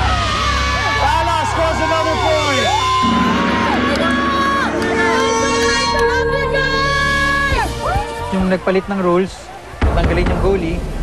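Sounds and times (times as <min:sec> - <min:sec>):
players cheering and whooping: 0:00.0 - 0:08.4.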